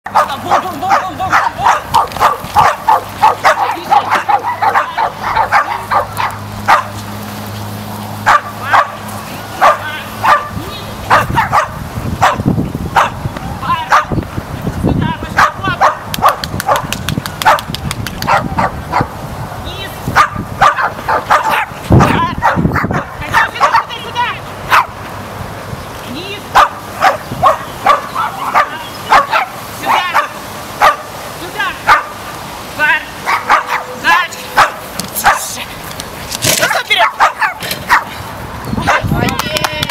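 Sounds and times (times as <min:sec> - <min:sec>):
dog barking sharply: 0:00.1 - 0:07.0, 0:08.2 - 0:09.0, 0:09.6 - 0:12.4, 0:13.0 - 0:13.2, 0:15.4 - 0:19.1, 0:20.2 - 0:23.9, 0:24.7 - 0:25.0, 0:26.5 - 0:31.1, 0:31.8 - 0:32.2, 0:33.2 - 0:35.5, 0:36.6 - 0:38.1.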